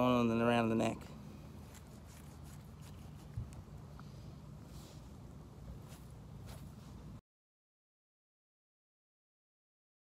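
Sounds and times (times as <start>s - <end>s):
low steady rumble: 0.0s - 7.2s
knife scraping through hide: 1.6s - 3.4s.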